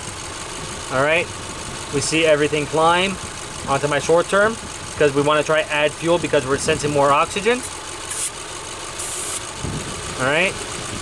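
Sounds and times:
car engine idling: 0.0 - 11.0
brief high hisses: 8.1 - 8.3, 9.0 - 9.4.

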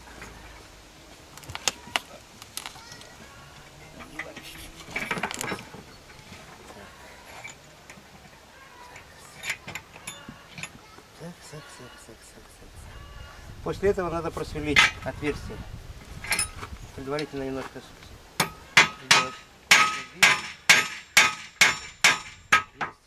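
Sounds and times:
metallic knocks and clinks: 9.0 - 10.8.

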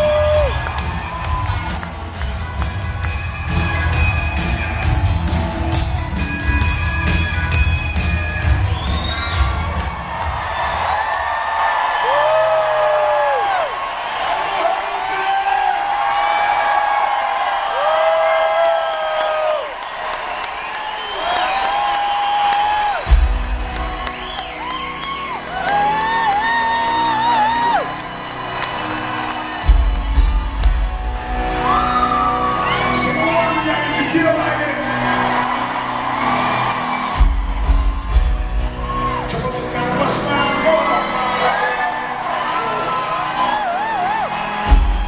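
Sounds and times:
rock band playing: 0.0 - 14.2, 19.4 - 45.0
audience whooping and cheering: 0.0 - 45.0.

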